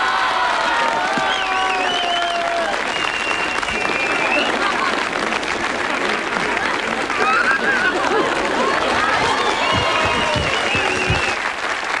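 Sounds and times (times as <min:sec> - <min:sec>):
audience applauding and cheering: 0:00.0 - 0:12.0
voices: 0:06.0 - 0:11.4.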